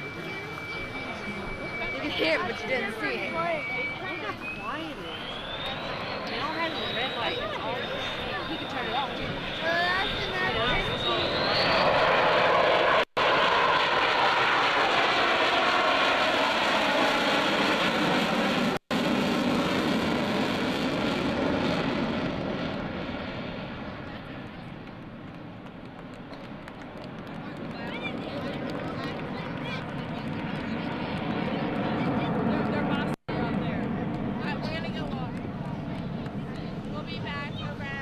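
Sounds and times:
jet engine noise: 0.0 - 38.0.

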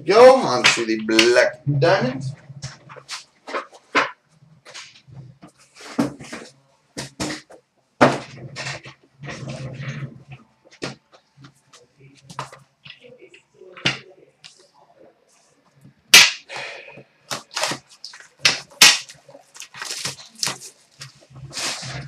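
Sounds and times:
cards and cardboard box handled: 19.5 - 21.8.

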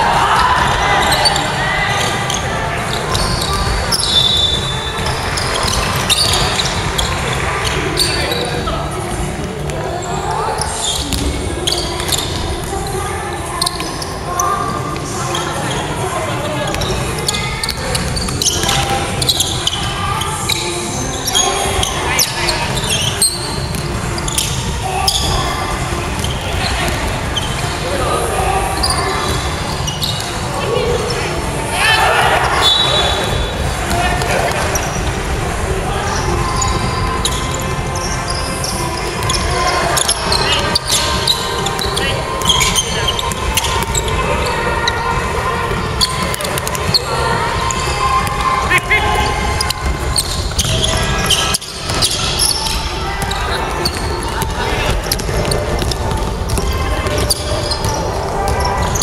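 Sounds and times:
players calling out: 0.0 - 59.0
basketball bouncing on wooden court: 49.2 - 59.0.

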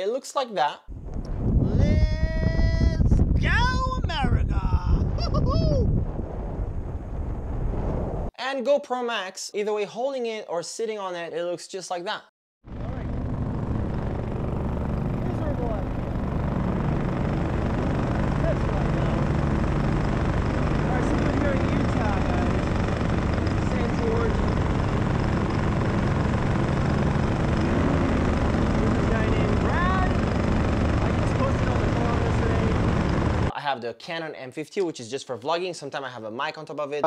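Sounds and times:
paramotor engine and propeller: 12.7 - 33.5.

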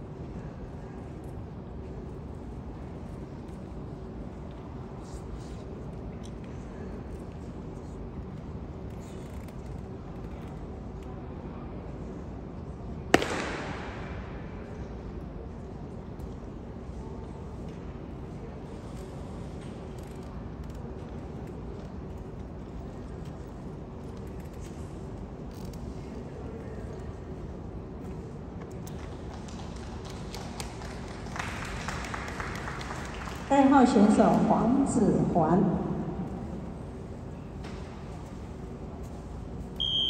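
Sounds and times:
broad rush of noise: 0.0 - 40.0
sharp bang echoing in hall: 13.1 - 14.8
steady low rumble: 33.8 - 39.8.

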